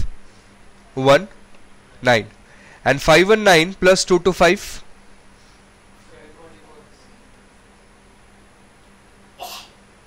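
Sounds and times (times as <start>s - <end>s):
faint steady hum: 0.0s - 10.0s
sharp burst of breath: 2.5s - 2.8s.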